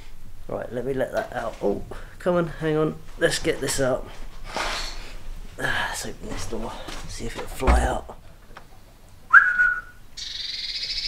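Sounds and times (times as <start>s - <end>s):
person whistling: 9.3s - 10.0s
bird churring rattle call: 10.2s - 11.0s.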